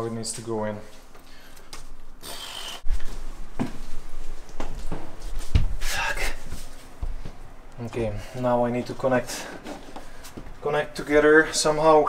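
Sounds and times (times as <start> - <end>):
man breathing hard: 1.2 - 2.8.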